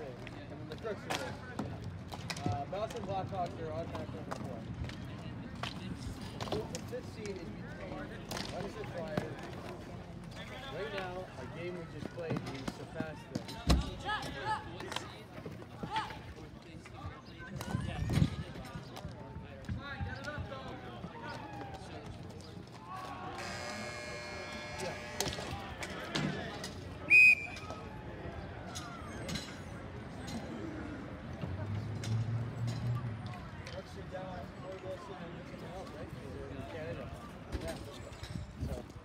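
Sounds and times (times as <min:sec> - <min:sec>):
players calling out: 0:22.8 - 0:31.1
referee's whistle blast: 0:27.1 - 0:27.7.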